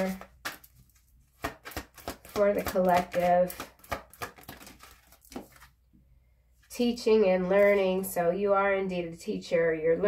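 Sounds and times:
cards being shuffled: 0.0 - 5.8.

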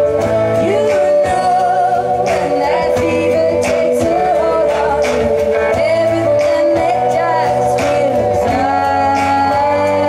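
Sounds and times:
woman singing: 0.5 - 10.0.

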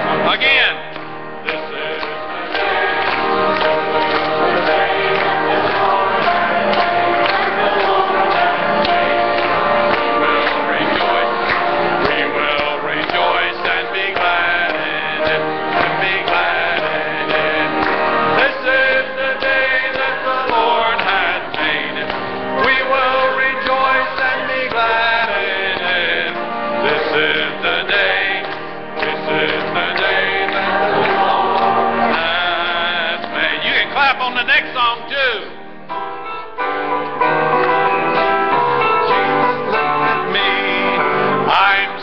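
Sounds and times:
choir singing gospel song: 0.0 - 35.4, 36.2 - 42.0
hand-clapping to the beat: 0.0 - 35.6, 36.8 - 42.0
instrumental accompaniment: 0.0 - 42.0
man singing into microphone: 40.1 - 42.0.

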